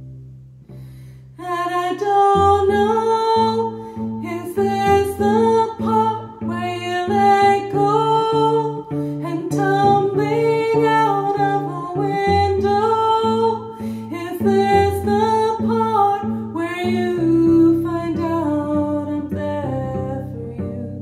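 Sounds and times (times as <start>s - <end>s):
plucked cello: 0.0s - 21.0s
woman singing: 1.4s - 21.0s.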